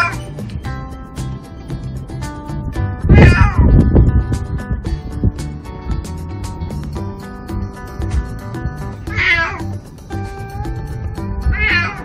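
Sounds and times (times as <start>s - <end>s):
cat meowing: 0.0s - 0.2s, 3.1s - 3.7s, 9.1s - 9.7s, 10.4s - 12.0s
background music: 0.0s - 12.0s.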